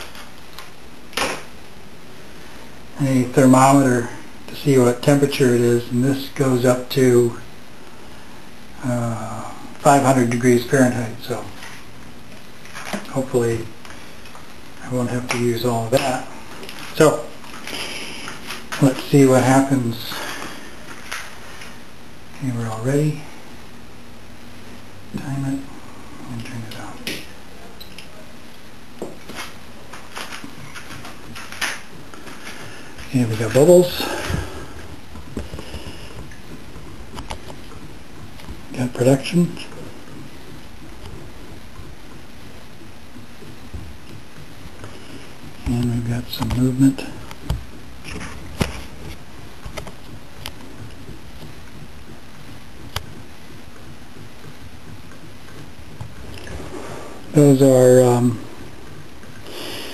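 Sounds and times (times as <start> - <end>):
faint hiss: 59.4 - 59.9.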